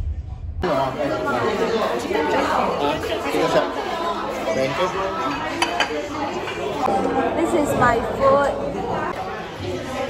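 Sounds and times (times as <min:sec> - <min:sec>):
crowd chatter: 0:00.1 - 0:10.0.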